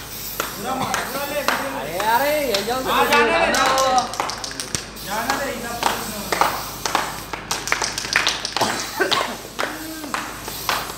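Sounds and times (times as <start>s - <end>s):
people clapping unevenly: 0.4s - 10.9s
excited voices: 0.6s - 6.4s, 8.1s - 10.5s.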